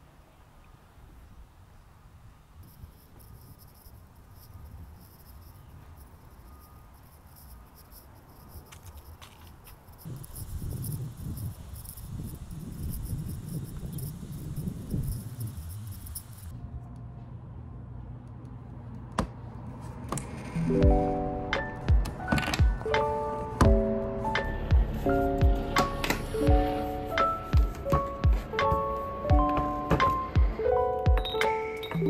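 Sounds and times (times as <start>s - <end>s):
high-pitched chirring: 2.6s - 9.2s, 9.8s - 16.5s
soft piano music with beat: 20.7s - 32.0s.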